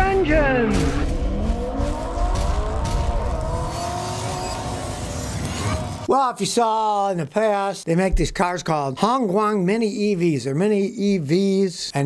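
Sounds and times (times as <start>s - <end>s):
car engine revving: 0.2s - 6.1s.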